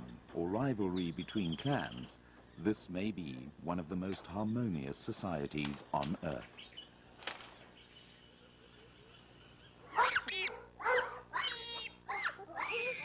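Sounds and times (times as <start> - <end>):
bonobos calling: 0.0 - 13.0.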